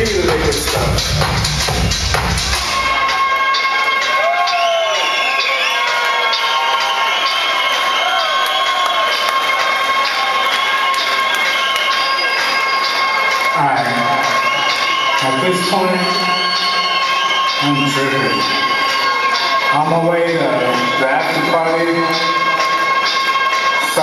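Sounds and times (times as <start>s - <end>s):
man's voice: 0.0s - 1.9s, 13.5s - 14.5s, 15.2s - 16.4s, 17.6s - 18.6s, 19.7s - 22.5s, 23.8s - 24.0s
club crowd cheering and whooping: 0.0s - 24.0s
electronic dance track: 0.0s - 24.0s.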